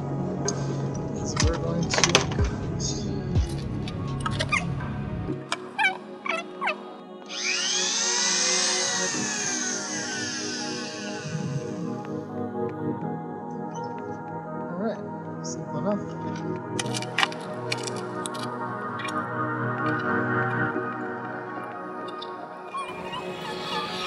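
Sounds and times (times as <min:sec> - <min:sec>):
background music: 0:00.0 - 0:24.0
rotary tool whining: 0:07.3 - 0:12.0.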